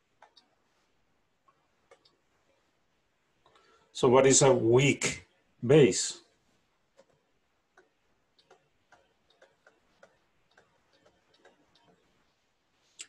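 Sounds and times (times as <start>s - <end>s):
stylus tapping on tablet screen: 1.5s - 2.6s, 6.9s - 12.4s.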